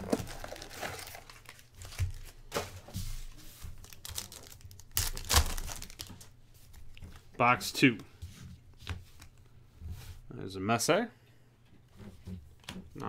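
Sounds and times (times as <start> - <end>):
foil wrapper crinkling and tearing: 0.0 - 2.5, 3.8 - 6.4.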